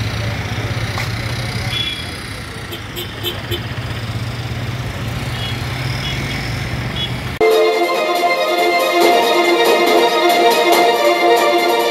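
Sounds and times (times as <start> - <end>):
vehicle engine idling: 0.0 - 7.1
orchestral music with strings: 7.4 - 11.9.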